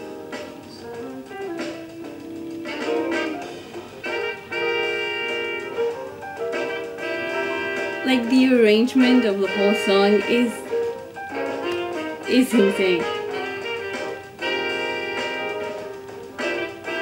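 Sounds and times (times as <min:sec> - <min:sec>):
jazz soul band music: 0:00.0 - 0:17.0
trumpet holding long notes: 0:04.0 - 0:05.9, 0:06.6 - 0:08.2, 0:09.0 - 0:10.6, 0:11.4 - 0:15.8, 0:16.4 - 0:17.0.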